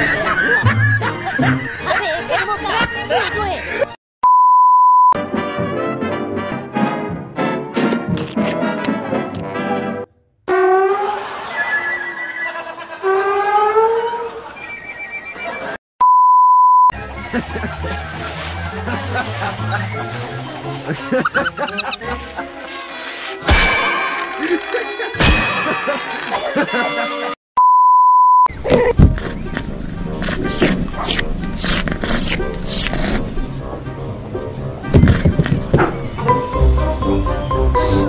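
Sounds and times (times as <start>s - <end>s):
busy cartoon music: 0.0s - 3.8s, 5.2s - 14.3s, 16.9s - 27.4s, 28.8s - 38.0s
orchestral cartoon music: 0.2s - 2.8s, 5.2s - 14.3s, 17.0s - 27.4s, 36.1s - 38.0s
steady high beep: 4.2s - 5.2s, 14.6s - 16.9s
music and sound effects: 29.4s - 38.0s.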